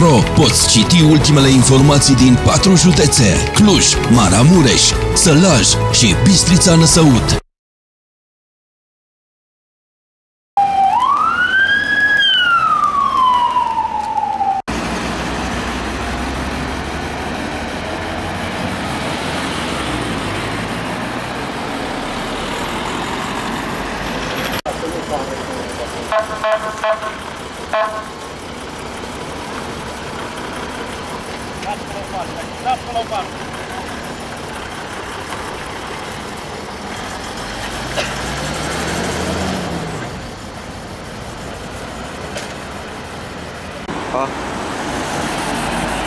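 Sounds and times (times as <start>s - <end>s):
emergency vehicle siren wailing: 0.0s - 7.4s, 10.6s - 46.0s
road noise rushing: 0.0s - 7.4s, 10.6s - 46.0s.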